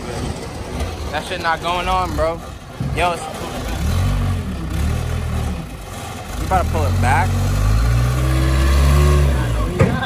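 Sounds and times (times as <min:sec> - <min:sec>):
vehicle engine at low revs: 0:00.0 - 0:10.0.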